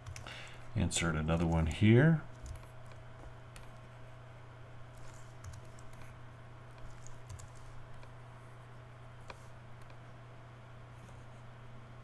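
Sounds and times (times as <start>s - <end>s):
low electrical hum: 0.0s - 12.0s
computer keyboard and mouse clicks: 2.3s - 3.7s, 5.0s - 6.1s, 6.8s - 8.1s.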